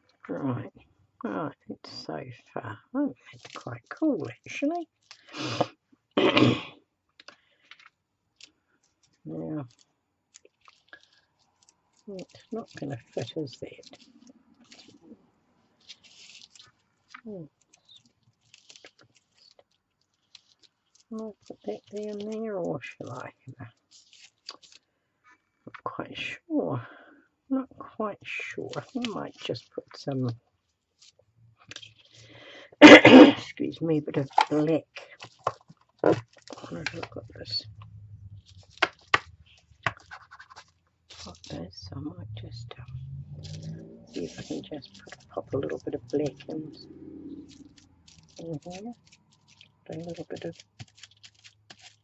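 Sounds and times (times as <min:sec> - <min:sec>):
soft paper rustle: 0:03.2 - 0:05.8, 0:07.2 - 0:26.2, 0:28.2 - 0:32.5, 0:34.0 - 0:52.0.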